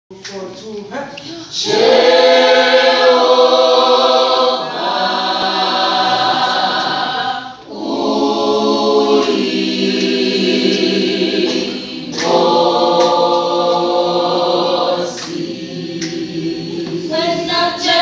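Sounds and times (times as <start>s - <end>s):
choir singing unaccompanied: 1.6s - 18.0s.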